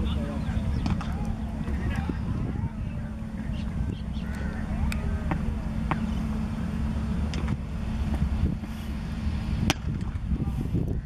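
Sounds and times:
faint distant voices: 0.0 - 7.0
low rumble and hum: 0.0 - 11.0.

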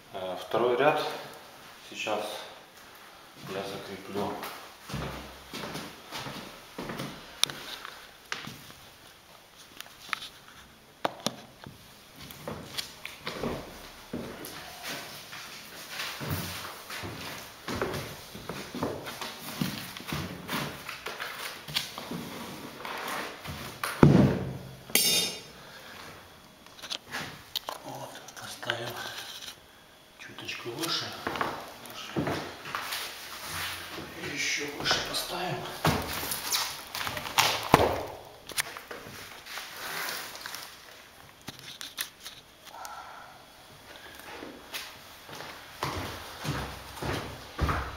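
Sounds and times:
floor planks knocking and rustling: 23.5 - 24.6.

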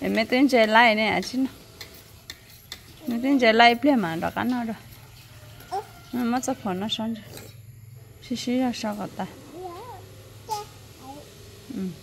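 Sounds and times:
metal spoons scraping plates: 0.6 - 6.4, 7.1 - 7.7.

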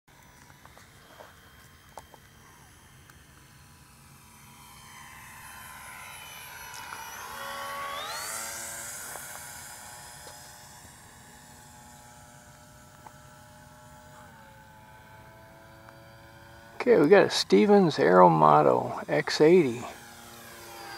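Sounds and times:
model airplane motor passing by: 0.1 - 20.9.

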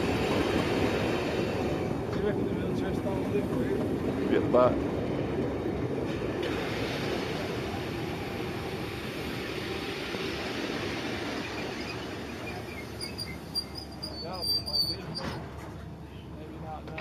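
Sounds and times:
train wheels rumbling on rails: 0.0 - 17.0
faint wheel squeals: 11.3 - 16.3.

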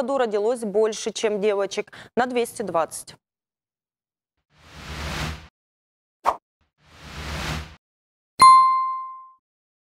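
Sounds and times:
bright ding: 8.4 - 9.4.

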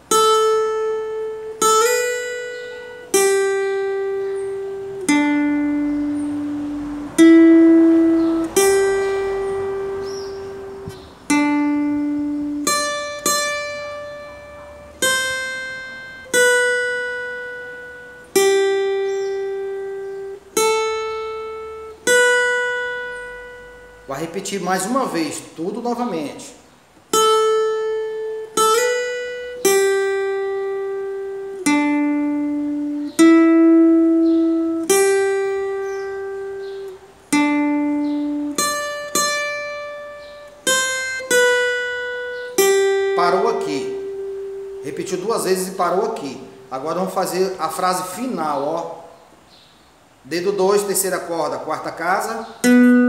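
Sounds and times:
acoustic guitar slow melody: 0.0 - 25.4, 26.6 - 51.1, 52.4 - 53.0.

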